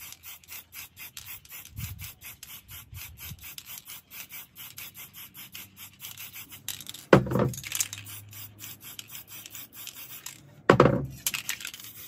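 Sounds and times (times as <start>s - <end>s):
spray paint can hissing: 0.0s - 12.0s
loud thump: 10.7s - 11.1s.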